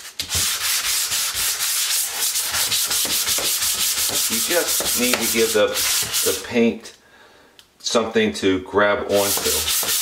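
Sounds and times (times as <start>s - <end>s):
sanding sponge on wood: 0.0s - 6.4s, 9.1s - 10.0s.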